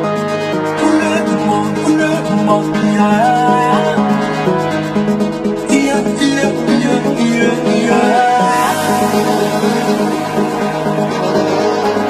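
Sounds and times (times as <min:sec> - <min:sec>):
afro house music: 0:00.0 - 0:12.0.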